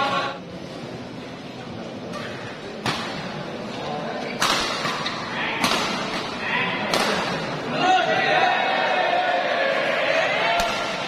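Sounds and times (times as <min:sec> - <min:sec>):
crowd chatter and calls: 0:00.0 - 0:11.0
racket hitting shuttlecock: 0:04.4 - 0:07.5.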